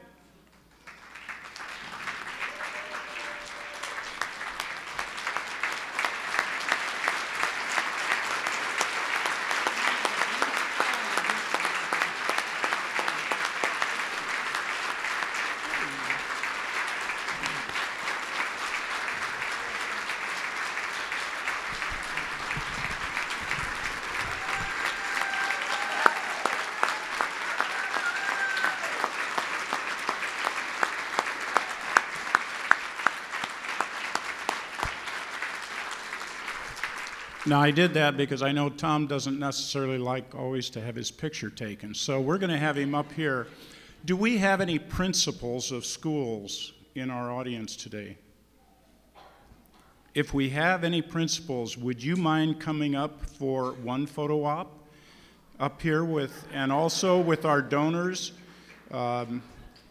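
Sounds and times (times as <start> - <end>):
audience applauding: 0.7 - 38.2.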